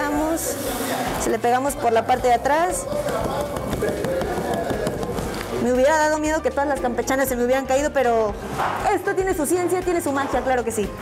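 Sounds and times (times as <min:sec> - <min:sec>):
tapping on metal tray: 0:02.8 - 0:05.5.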